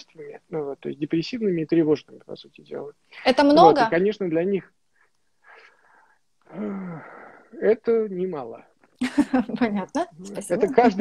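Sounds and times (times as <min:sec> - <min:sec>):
person saying held eh: 0:03.5 - 0:04.0
faint in-breath: 0:05.4 - 0:07.6.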